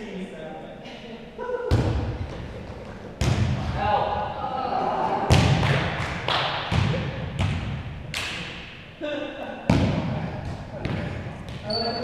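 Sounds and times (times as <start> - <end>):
volleyball bouncing on gym floor: 1.7 - 2.4, 3.2 - 3.8, 5.3 - 8.5, 9.7 - 11.8.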